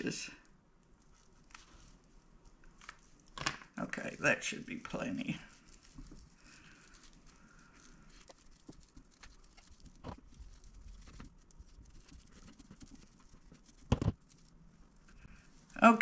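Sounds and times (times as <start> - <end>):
fabric rustling: 0.8 - 16.0.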